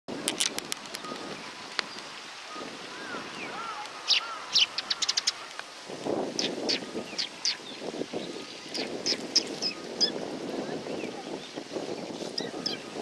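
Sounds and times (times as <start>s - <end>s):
sparrows chirping: 2.9s - 5.5s, 6.4s - 13.0s.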